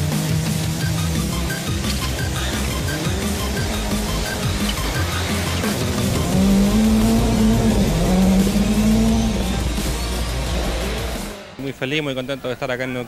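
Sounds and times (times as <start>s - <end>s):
rally car engine at high revs: 0.0s - 11.9s
background music: 0.0s - 13.0s
man speaking: 11.6s - 13.0s.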